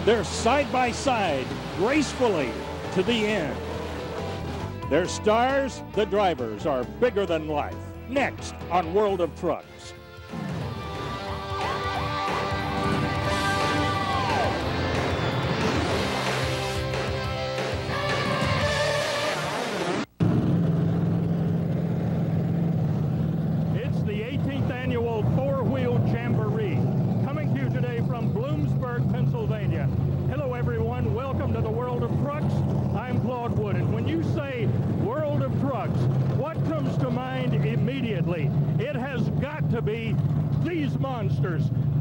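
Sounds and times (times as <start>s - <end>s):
monster truck engine idling: 0.0s - 7.0s, 20.2s - 42.0s
theme music: 0.0s - 22.9s.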